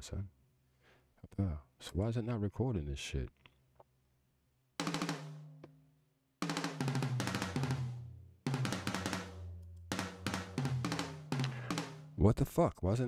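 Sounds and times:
programmed drum beat with bass: 4.8s - 5.6s, 6.4s - 12.2s.

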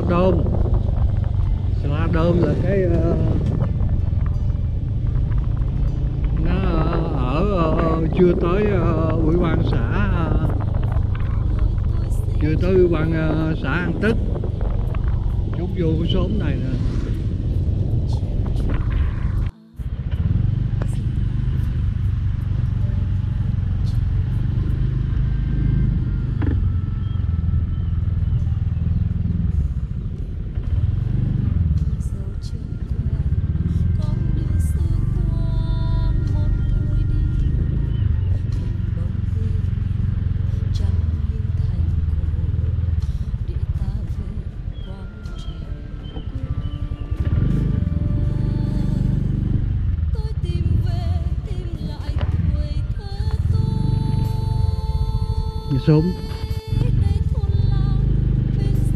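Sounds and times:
motorbike engine running: 0.0s - 58.9s.

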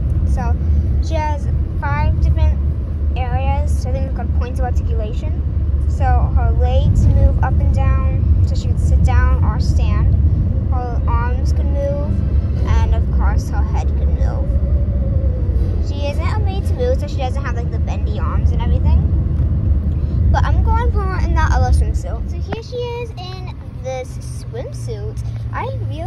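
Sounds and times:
car cabin road rumble: 0.0s - 26.0s
person talking: 10.7s - 14.5s, 15.8s - 19.1s, 20.1s - 26.0s.

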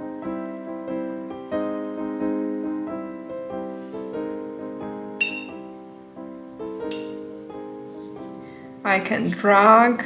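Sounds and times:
soft piano music: 0.0s - 10.0s
glass jar clinking: 5.2s - 5.6s, 6.9s - 7.2s.

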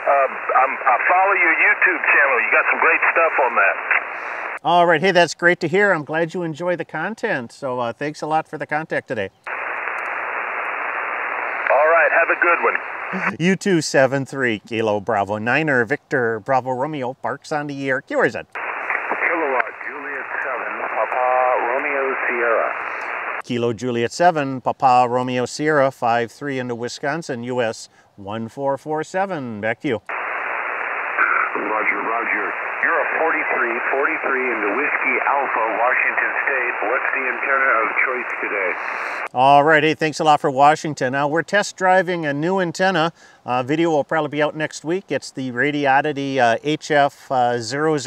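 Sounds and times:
distant voice through static: 0.0s - 4.6s, 11.1s - 13.5s, 18.6s - 23.4s, 30.1s - 39.3s
radio receiver hiss: 0.0s - 4.6s, 9.5s - 13.4s, 18.6s - 23.4s, 30.0s - 39.4s.

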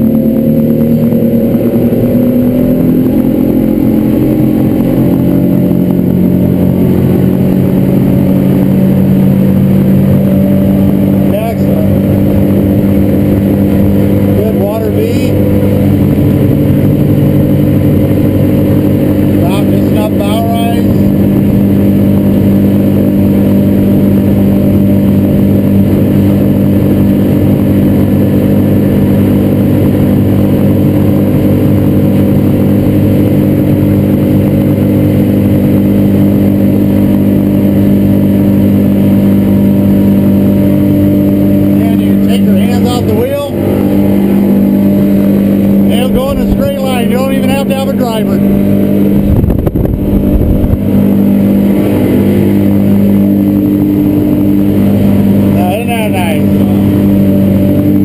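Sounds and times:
water against hull: 0.0s - 55.8s
outboard motor humming: 0.0s - 58.0s.

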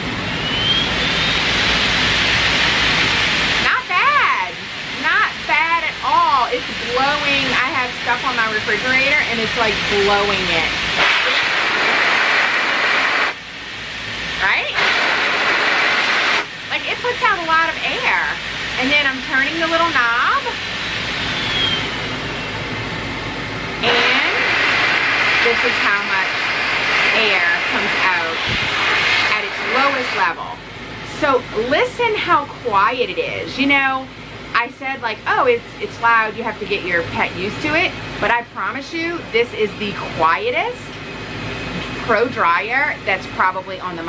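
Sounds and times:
pet dryer air rush: 0.0s - 43.8s
faint whine: 0.0s - 44.0s.

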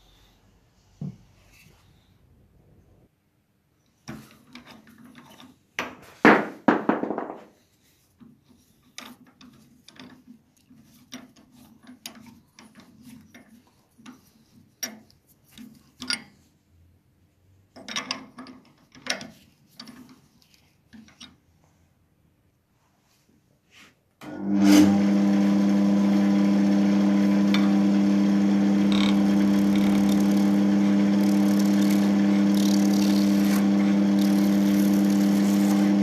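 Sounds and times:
turning tool scraping: 7.6s - 16.0s, 27.5s - 36.0s
wood lathe humming: 24.4s - 36.0s.

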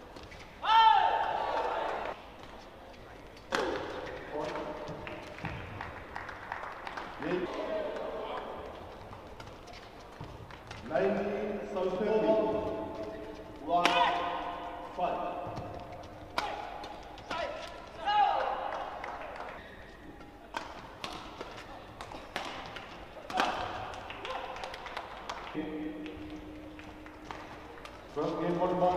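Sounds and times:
voices in echoing hall: 0.6s - 28.9s
racket striking shuttlecock: 13.8s - 14.7s, 16.2s - 17.8s, 20.2s - 25.2s, 26.0s - 28.1s.

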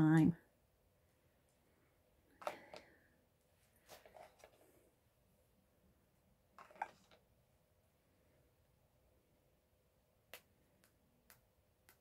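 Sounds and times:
plastic tube clicks and rustles: 6.6s - 7.3s.

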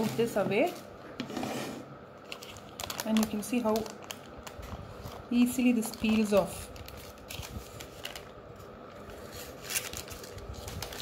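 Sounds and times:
paper rustling: 2.2s - 11.0s.

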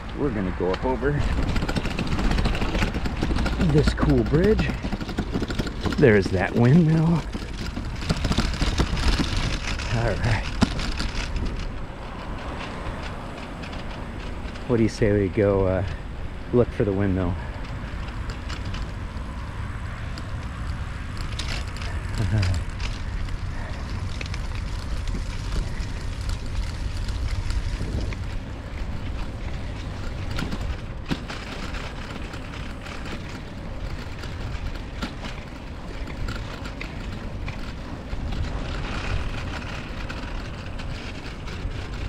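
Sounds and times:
bicycle tyres rolling: 0.0s - 42.0s.

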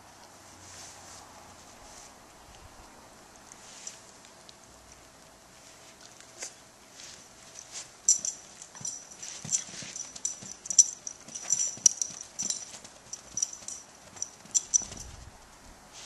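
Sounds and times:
high metallic jingle: 7.4s - 15.2s
dog claws clicking and tapping: 8.1s - 15.1s.

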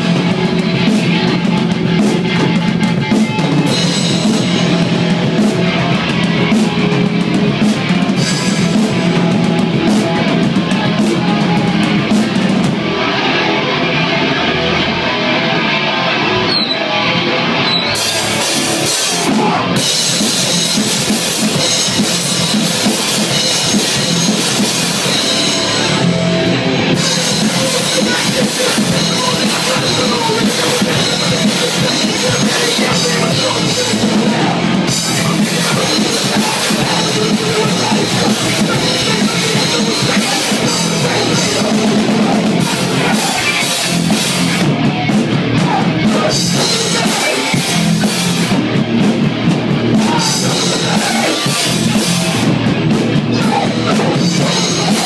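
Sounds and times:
distorted electric guitars: 0.0s - 55.0s
drum kit: 0.0s - 55.0s
punk band playing live: 0.0s - 55.0s.

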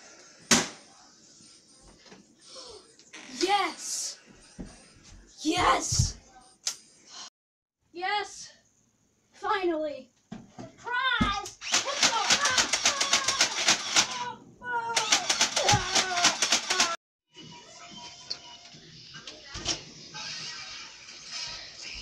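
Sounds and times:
child's voice: 3.3s - 4.2s, 5.4s - 6.2s, 8.0s - 8.6s, 10.8s - 17.0s
toy blaster rapid clicks: 11.6s - 14.3s, 15.0s - 17.0s.

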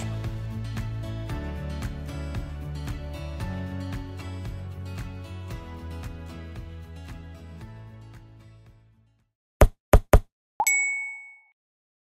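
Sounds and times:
bright bell-like ding: 10.6s - 11.6s.

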